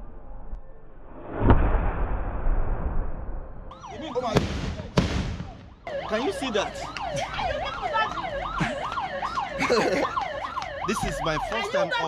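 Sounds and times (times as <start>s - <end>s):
rumbling echo: 1.1s - 3.7s
loud bomb blast: 1.2s - 3.7s
warbling siren-like wail: 3.7s - 4.4s, 5.4s - 12.0s
sharp bangs: 4.0s - 5.9s.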